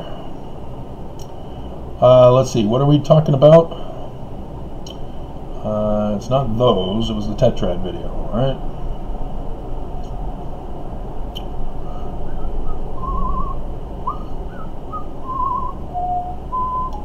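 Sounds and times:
steady low hum: 0.0 - 17.0
person whistling: 11.9 - 17.0.

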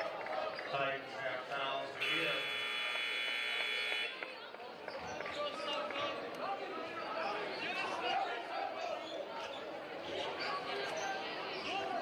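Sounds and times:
crowd chatter: 0.0 - 12.0
scoreboard buzzer: 2.0 - 4.2.

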